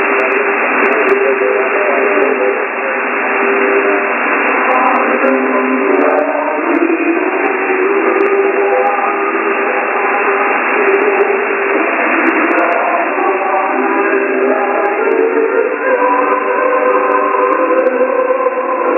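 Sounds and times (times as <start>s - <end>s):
faint wavering radio tones: 0.0s - 18.9s
radio static: 0.0s - 18.9s.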